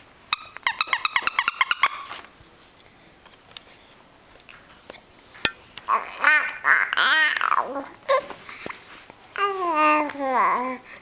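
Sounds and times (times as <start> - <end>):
baby cooing: 5.9 - 8.4.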